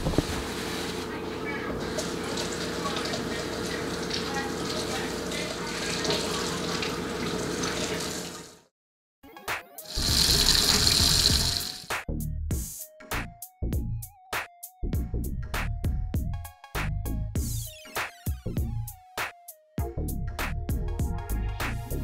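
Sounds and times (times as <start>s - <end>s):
water spraying into steel sink: 9.9s - 12.0s.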